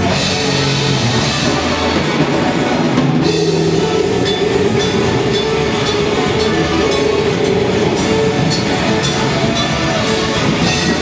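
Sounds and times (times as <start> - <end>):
distorted guitar and bass: 0.0 - 11.0
drums: 0.0 - 11.0.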